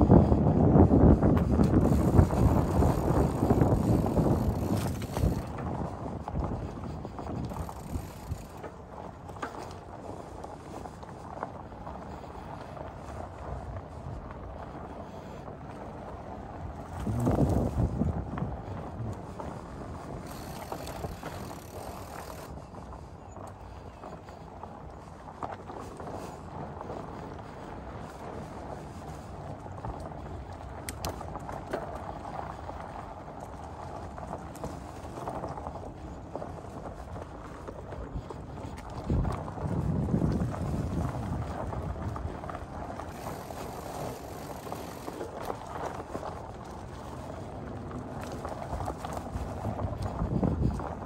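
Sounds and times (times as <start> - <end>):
wide bike tyres rumbling on dirt: 0.0 - 51.0
wind on microphone: 0.0 - 51.0
faint ticks: 1.4 - 9.8, 16.9 - 26.4, 29.8 - 32.8.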